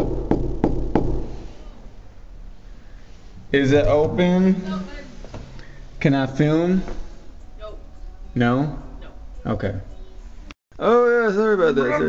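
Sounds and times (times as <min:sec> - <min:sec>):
knock on a door: 0:00.0 - 0:01.3
low background hum: 0:00.0 - 0:12.0.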